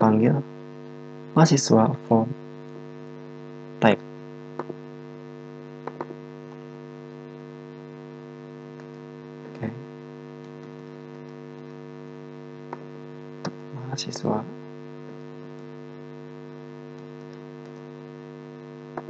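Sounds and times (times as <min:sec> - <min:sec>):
electrical hum: 0:00.0 - 0:19.0
keystrokes: 0:05.8 - 0:06.2
mouse clicks: 0:05.8 - 0:06.2.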